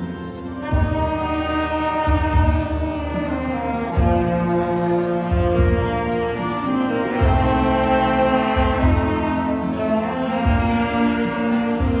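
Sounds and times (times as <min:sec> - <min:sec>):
deep bass notes: 0:00.0 - 0:12.0
saxophones playing slow melody: 0:00.0 - 0:12.0.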